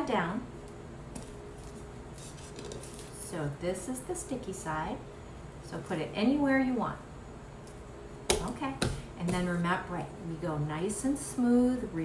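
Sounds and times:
low room noise: 0.0 - 12.0
stencil sheet rubbing and rustling: 1.6 - 3.1.

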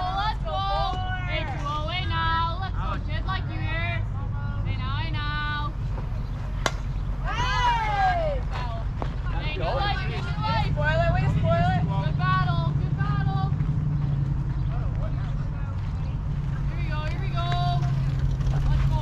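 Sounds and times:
girls shouting and chanting: 0.0 - 5.7, 7.2 - 13.6
low rumble: 0.0 - 19.0
sharp crack: 6.6 - 6.9.

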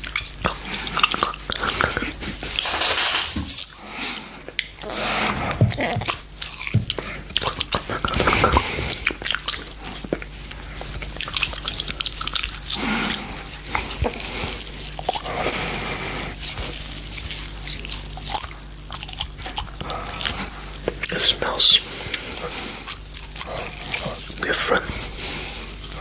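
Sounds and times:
wet mouth licking and biting: 0.0 - 3.0, 4.5 - 26.0.

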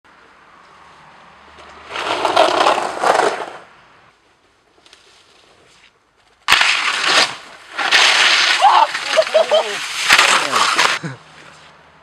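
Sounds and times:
skis scraping over icy snow: 1.7 - 3.7, 6.5 - 11.7.

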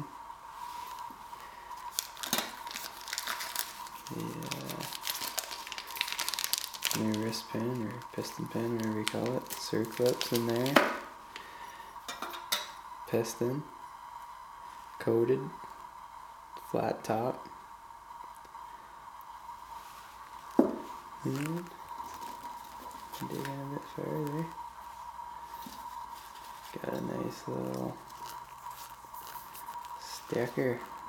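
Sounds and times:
paper packing rustling: 1.8 - 11.0, 20.4 - 24.6, 25.5 - 31.0
man speaking: 4.1 - 4.9, 6.9 - 10.9, 21.2 - 21.8, 23.2 - 24.6, 26.7 - 28.0, 30.0 - 31.0.

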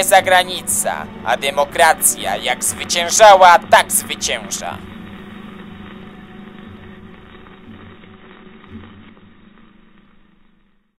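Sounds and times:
low hum: 0.0 - 10.9
uneven rumble: 4.8 - 10.9.

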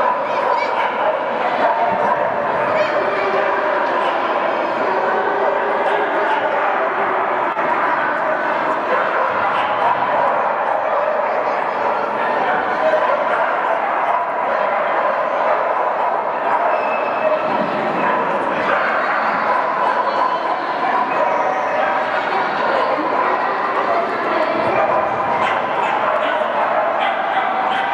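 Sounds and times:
crowd chatter: 0.0 - 27.9
dogs barking and yipping: 0.0 - 27.9.

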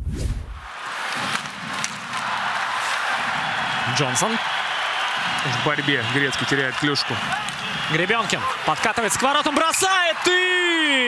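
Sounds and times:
hockey sticks and puck clacking: 0.7 - 10.4
crowd noise: 0.7 - 11.0.

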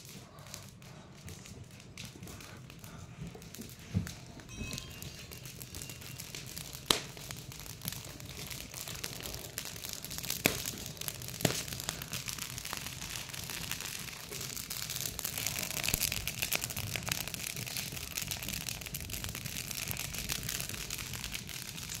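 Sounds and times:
wood fire crackling: 0.0 - 22.0.

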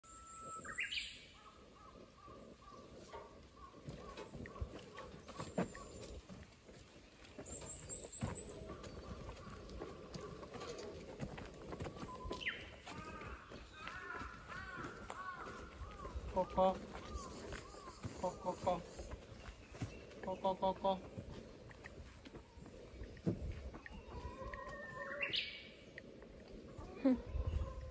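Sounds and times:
birds calling: 0.0 - 27.9.

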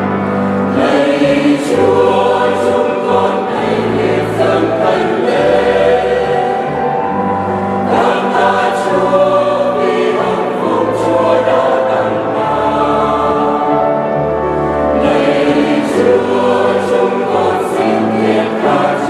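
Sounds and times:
mixed choir singing a hymn: 0.0 - 19.0.

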